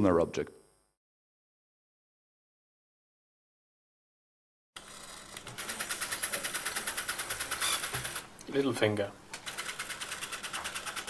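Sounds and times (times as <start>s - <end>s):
prosthetic hand motors whirring: 4.8s - 8.3s, 9.4s - 11.0s.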